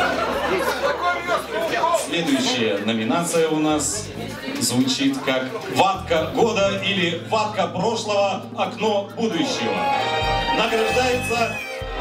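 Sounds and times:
indistinct chatter: 0:00.0 - 0:08.4.

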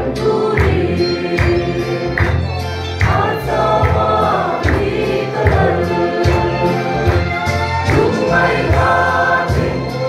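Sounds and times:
choir singing gospel song: 0:00.0 - 0:10.0.

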